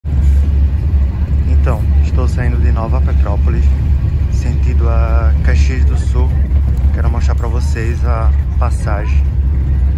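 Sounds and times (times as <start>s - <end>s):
bus engine drone: 0.0s - 9.9s
road noise: 0.0s - 9.9s.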